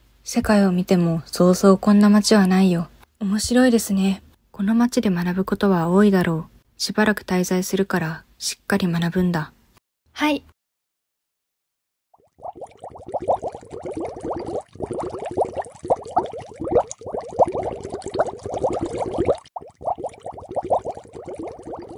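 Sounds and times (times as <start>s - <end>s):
water bubbling and gurgling: 12.2s - 21.9s.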